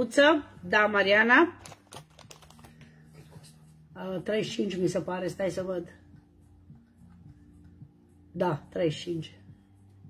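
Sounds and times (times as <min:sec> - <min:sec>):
low steady hum: 0:00.0 - 0:10.0
small objects clicking on desk: 0:01.6 - 0:02.8.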